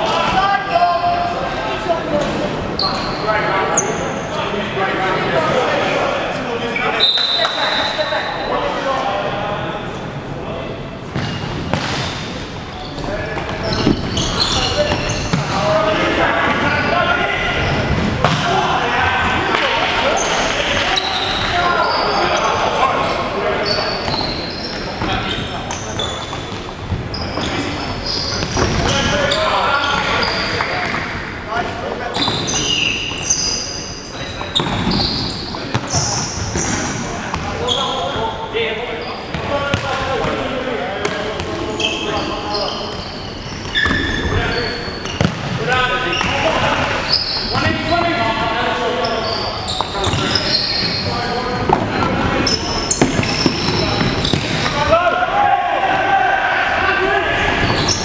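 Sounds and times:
shoes squeaking on court: 11.1 - 15.6, 20.2 - 31.1, 32.1 - 38.2, 41.4 - 48.2, 48.9 - 54.8, 57.6 - 58.0
players shouting: 13.1 - 24.6, 45.5 - 58.0.

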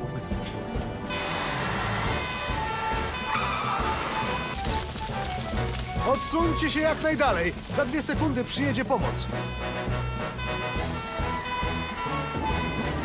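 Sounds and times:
cartoon background music: 0.0 - 13.0.

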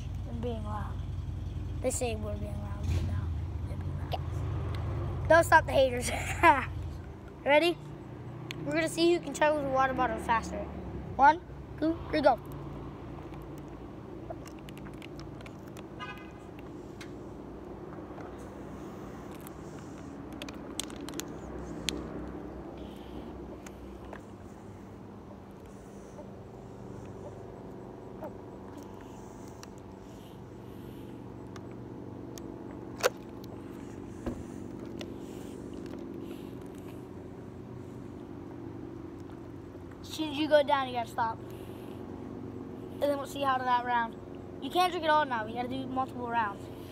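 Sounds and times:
sharp clicks: 12.4 - 17.2.

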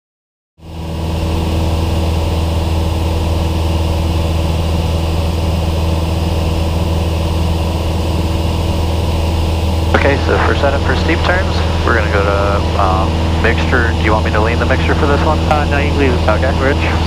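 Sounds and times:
propeller plane engine droning: 0.6 - 17.0.

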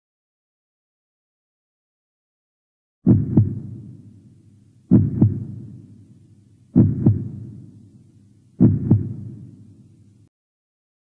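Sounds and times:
heartbeat double thumps: 3.1 - 4.0, 4.9 - 5.9, 6.8 - 7.7, 8.6 - 9.6.

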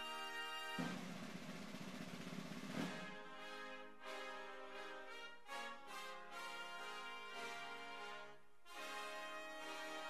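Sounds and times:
brass fanfare music: 0.0 - 1.3, 2.7 - 10.0
drum roll: 0.0 - 3.7.

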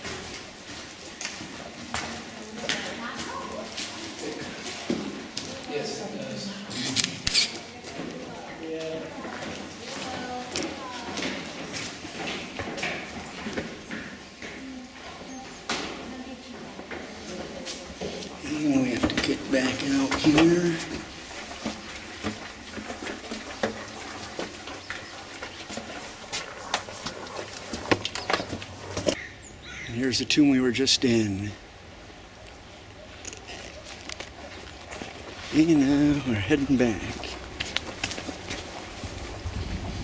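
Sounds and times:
footsteps on gritty stone floor: 0.0 - 5.7, 6.6 - 29.2, 33.2 - 40.0.

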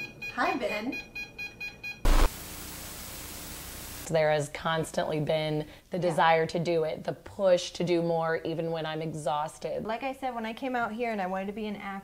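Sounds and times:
rapid electronic meter beeping: 1.2 - 2.3
loud burst: 2.1 - 4.1
static hiss: 2.1 - 4.1.

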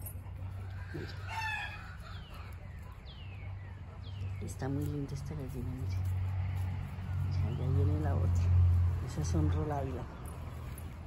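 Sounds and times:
rooster crowing: 0.5 - 2.6.

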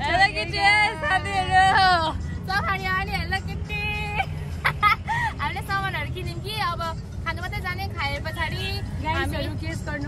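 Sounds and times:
auto-rickshaw engine rumbling: 0.0 - 10.0
road noise: 0.0 - 10.0.

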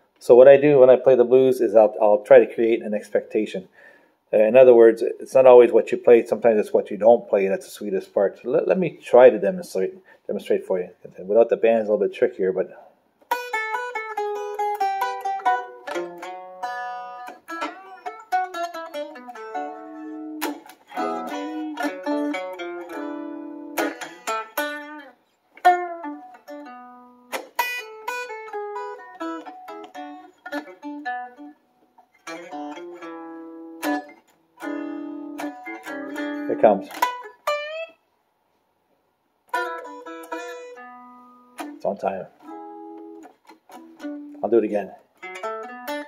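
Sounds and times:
electric guitar playing blues: 0.4 - 38.1, 39.5 - 46.0.

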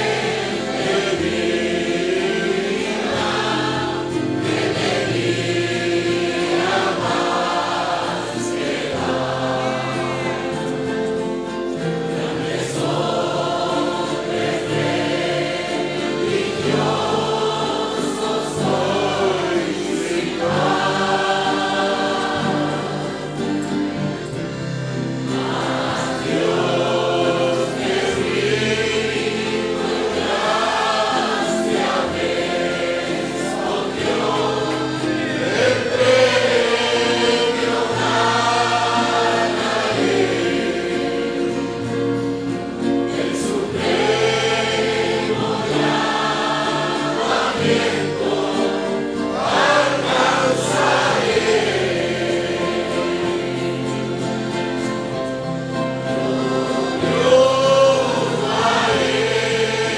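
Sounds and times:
congregation singing: 0.0 - 59.9.

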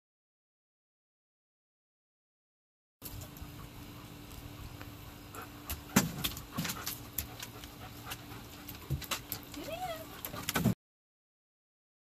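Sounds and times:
paws clicking on wooden deck: 3.0 - 10.8.

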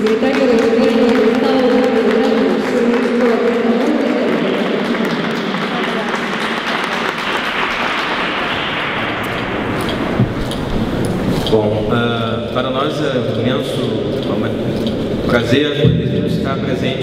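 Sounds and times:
audience applauding: 0.0 - 11.2
crowd voices: 0.0 - 12.6.

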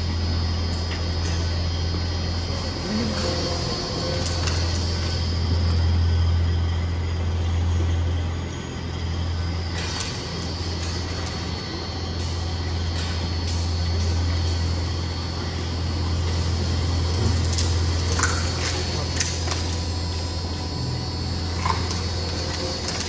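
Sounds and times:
shredder running with deep hum: 0.0 - 23.0.

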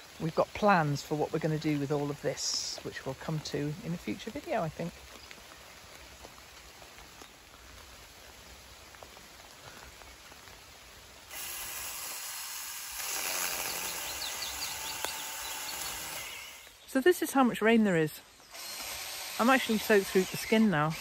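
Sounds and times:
rain falling on leaves: 0.0 - 21.0.

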